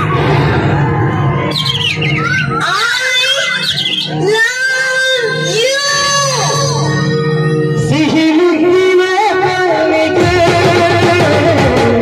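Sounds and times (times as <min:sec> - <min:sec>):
high warbling trills: 0:00.0 - 0:08.1
voice-like melody: 0:01.9 - 0:10.5.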